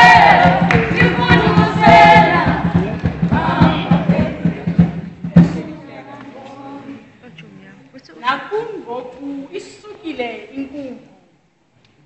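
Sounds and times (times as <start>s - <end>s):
choir singing: 0.0s - 7.1s.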